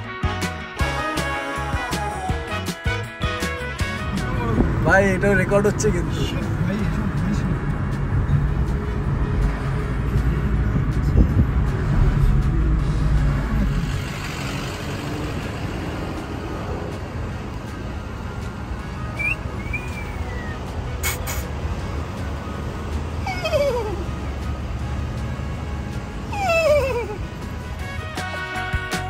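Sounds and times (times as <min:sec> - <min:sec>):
car road and engine rumble: 0:00.0 - 0:29.0
high chirps: 0:19.1 - 0:21.5.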